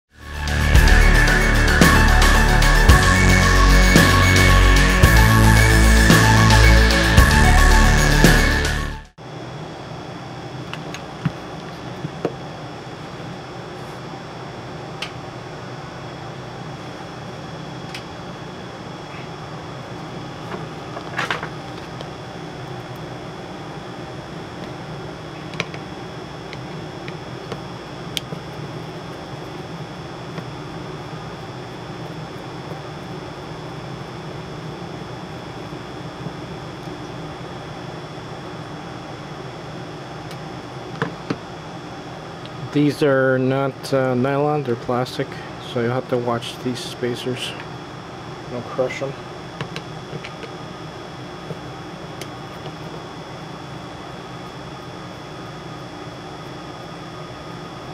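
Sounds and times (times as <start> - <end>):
mechanical fan hum: 0.2 - 57.9.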